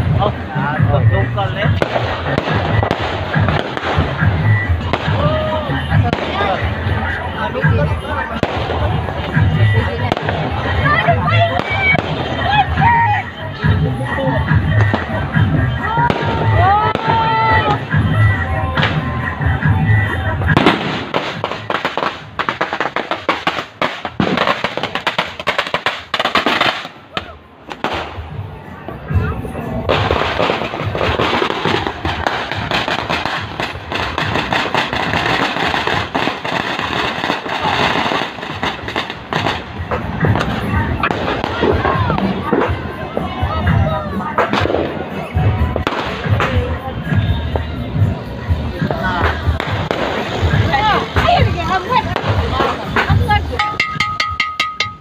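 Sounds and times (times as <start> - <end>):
fireworks bangs and crackling: 0.0 - 55.0.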